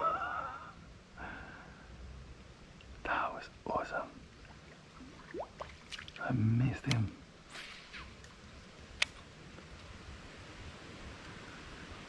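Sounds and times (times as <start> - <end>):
person whispering: 3.0 - 4.2, 6.2 - 7.2.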